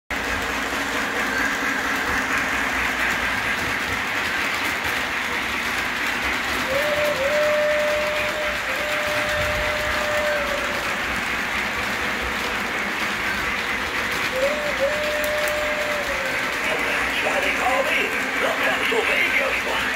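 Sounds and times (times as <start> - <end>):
model trains rolling rumble: 0.1 - 19.9.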